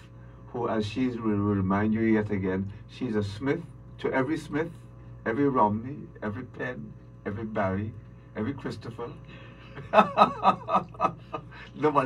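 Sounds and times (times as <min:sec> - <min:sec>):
man chuckling: 0:09.7 - 0:11.8.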